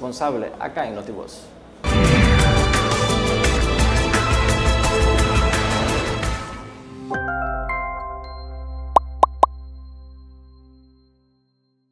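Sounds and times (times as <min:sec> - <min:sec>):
upward-sweeping pop effects: 0:09.0 - 0:09.5.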